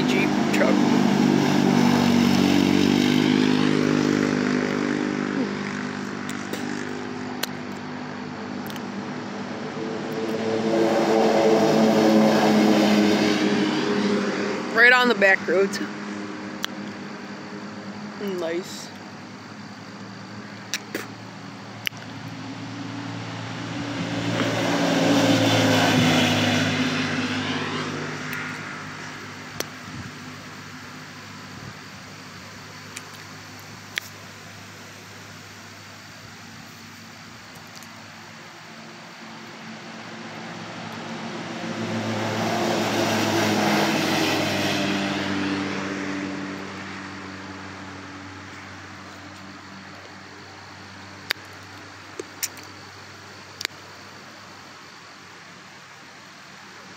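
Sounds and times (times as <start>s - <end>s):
utility vehicles driving past: 0.0s - 52.2s.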